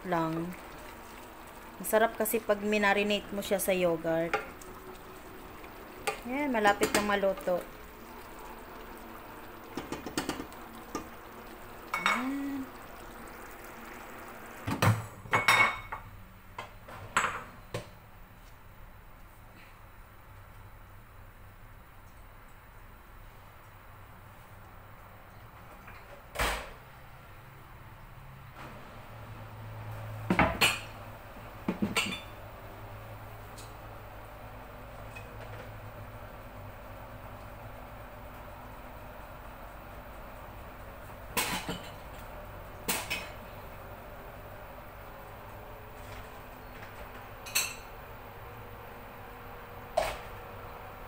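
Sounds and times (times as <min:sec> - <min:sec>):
pots and utensils clinking: 0:11.8 - 0:12.8, 0:31.7 - 0:32.4, 0:47.4 - 0:47.9.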